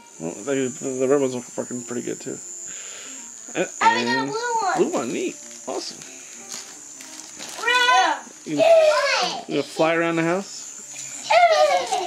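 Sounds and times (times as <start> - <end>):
child squealing: 7.6 - 9.5, 11.2 - 12.0.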